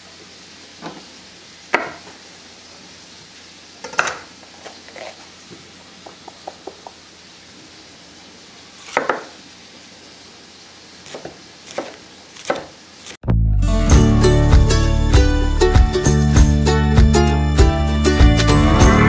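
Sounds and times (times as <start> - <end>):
faint steady hiss: 0.0 - 13.2.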